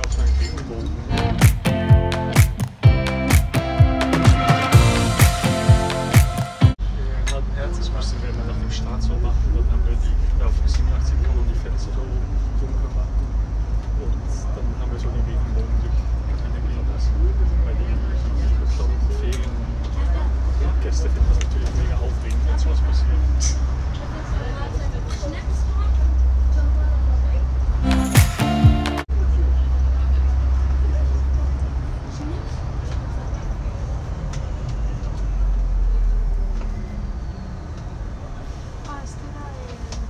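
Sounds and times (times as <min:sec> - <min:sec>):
bus engine and road rumble: 0:00.0 - 0:01.4, 0:06.7 - 0:27.8, 0:29.0 - 0:40.0
passengers talking indistinctly: 0:06.7 - 0:36.7, 0:37.6 - 0:40.0.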